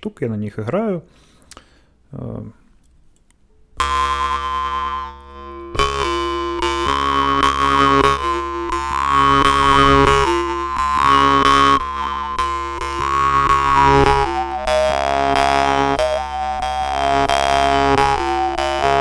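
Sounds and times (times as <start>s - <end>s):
jaw harp playing: 3.7s - 19.0s.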